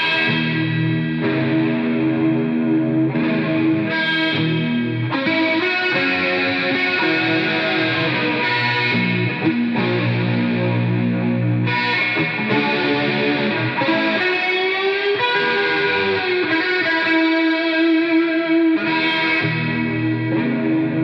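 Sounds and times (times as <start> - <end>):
distorted electric guitar solo: 0.0 - 21.0.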